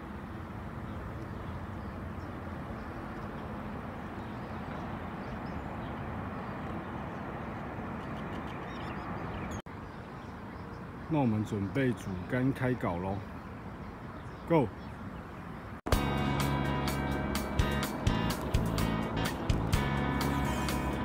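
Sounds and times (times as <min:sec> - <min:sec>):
outdoor background noise: 0:00.0 - 0:21.0.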